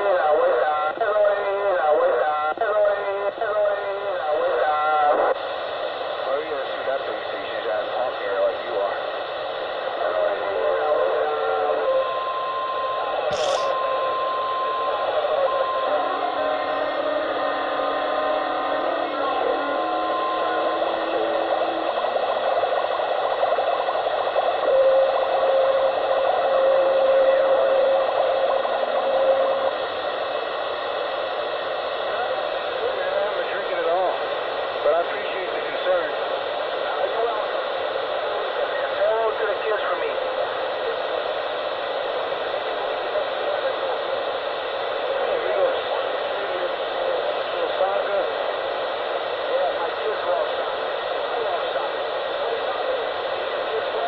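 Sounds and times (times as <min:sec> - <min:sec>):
hissy radio sound: 0:00.0 - 0:09.2, 0:09.8 - 0:12.2, 0:13.2 - 0:16.8, 0:18.7 - 0:54.0.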